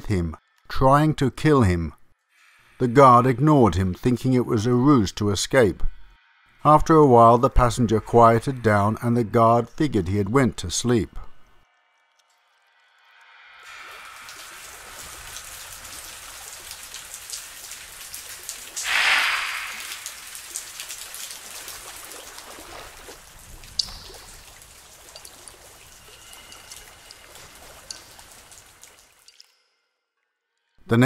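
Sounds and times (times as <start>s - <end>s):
rain-like crackling patter: 13.6s - 29.5s.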